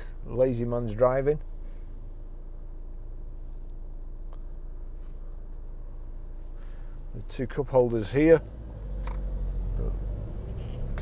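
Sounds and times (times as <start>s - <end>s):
car engine and tyre hum: 0.0s - 11.0s.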